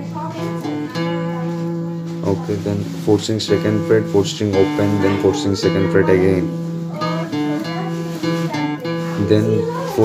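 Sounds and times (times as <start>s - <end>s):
acoustic guitar single notes: 0.0s - 10.0s.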